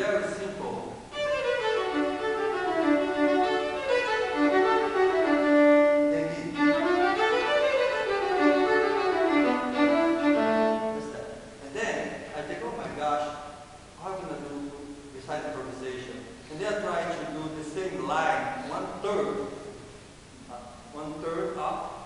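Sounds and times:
solo violin melody: 1.1 - 11.2.

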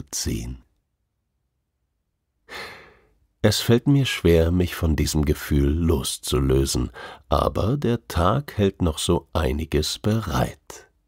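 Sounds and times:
man breathing: 2.4 - 3.2, 6.9 - 7.3.

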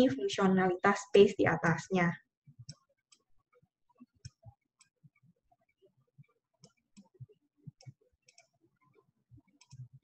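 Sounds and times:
computer mouse clicks: 2.6 - 3.3, 6.6 - 8.6, 9.4 - 10.0.

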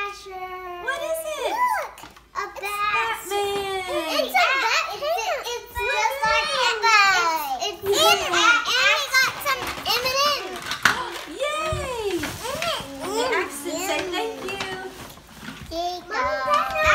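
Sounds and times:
small children chattering: 0.0 - 16.9.

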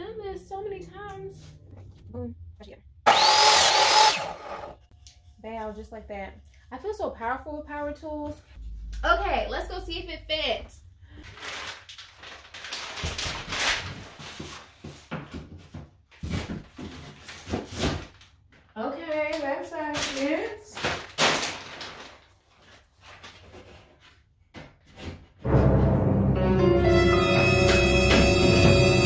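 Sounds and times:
music: 25.4 - 29.0.

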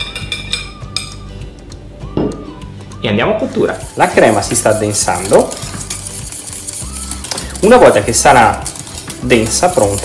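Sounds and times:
soft background music: 0.0 - 10.0
whisk scraping and clinking: 3.7 - 10.0.

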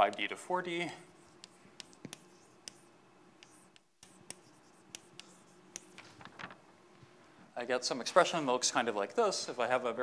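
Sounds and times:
chalk tapping on board: 0.0 - 0.4, 1.0 - 6.0
chalk writing on blackboard: 0.0 - 6.0.

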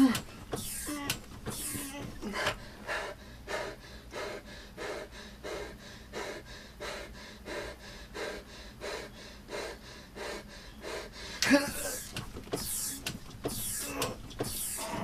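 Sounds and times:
man panting hard: 0.0 - 15.0.

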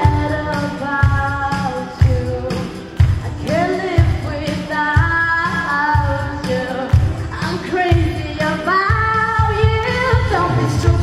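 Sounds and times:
music with steady beat: 0.0 - 11.0
woman singing into microphone: 0.0 - 11.0.

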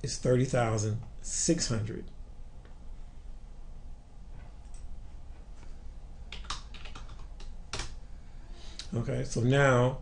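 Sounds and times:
computer keyboard keystrokes: 6.3 - 8.0.

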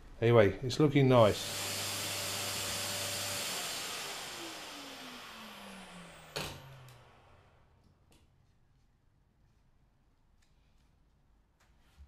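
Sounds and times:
motor whine winding down: 1.3 - 7.7.

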